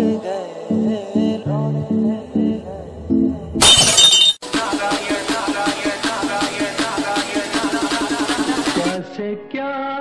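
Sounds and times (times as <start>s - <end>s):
music: 0.0s - 3.6s, 4.4s - 10.0s
glass shattering crash: 3.6s - 4.4s
music with a steady beat: 4.4s - 9.1s.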